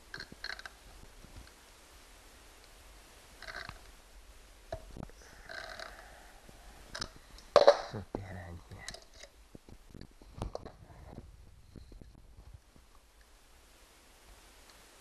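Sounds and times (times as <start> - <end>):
low murmured voice: 7.9 - 9.0.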